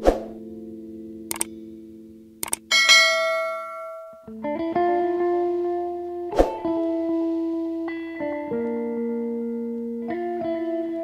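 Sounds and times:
guitar music: 0.0 - 11.0
mouse clicks: 2.4 - 2.7
bell ding: 2.7 - 4.3.

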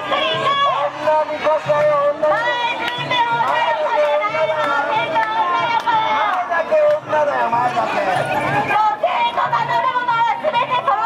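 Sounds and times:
women chanting and shouting: 0.0 - 7.1, 8.6 - 11.0
festival crowd: 0.0 - 11.0.

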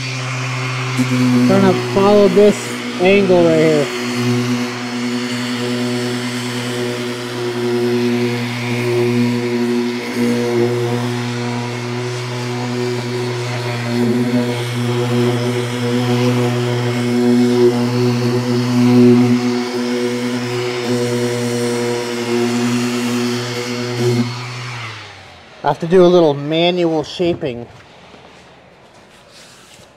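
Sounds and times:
orbital sander droning: 0.0 - 29.9.

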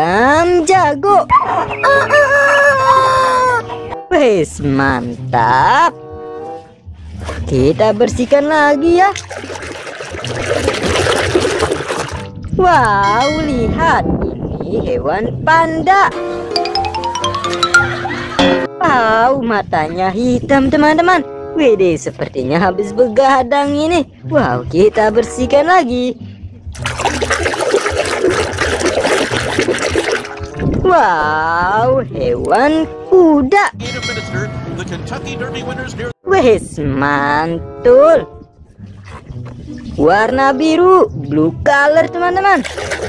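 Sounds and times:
soapy water sloshing: 9.1 - 12.4, 26.8 - 31.1, 42.5 - 43.0.

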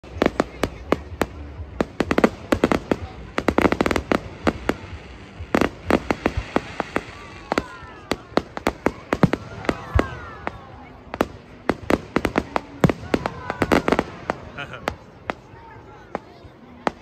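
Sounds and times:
fireworks bangs and crackling: 0.0 - 17.0.

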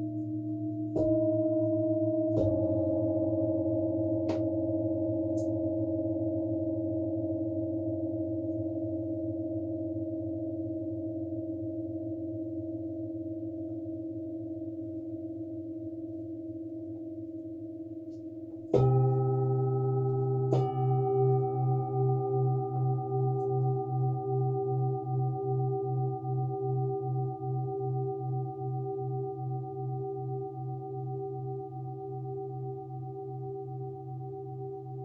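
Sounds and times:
singing bowl struck: 0.0 - 7.0, 18.6 - 35.0
metal singing bowls ringing: 18.6 - 35.0.

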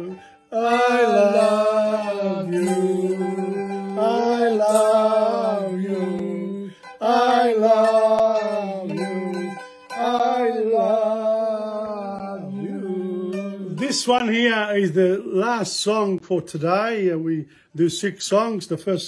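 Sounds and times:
men singing long held notes: 0.0 - 14.2
plucked string accompaniment: 0.0 - 14.4.

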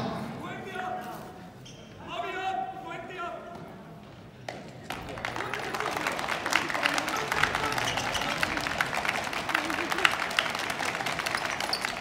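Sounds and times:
faint echoing voices: 0.0 - 12.0.

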